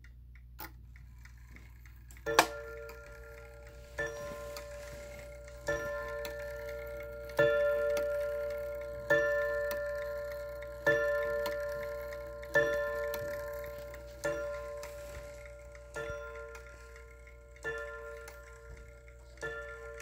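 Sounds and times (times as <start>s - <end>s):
clock ticking: 0.0s - 20.0s
clock striking: 0.6s - 20.0s.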